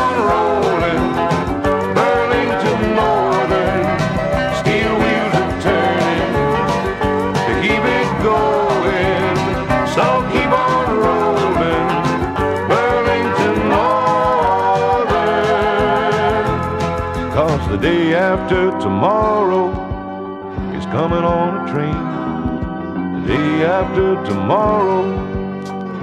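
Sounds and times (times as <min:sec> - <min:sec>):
country-pop song from vinyl: 0:00.0 - 0:26.0.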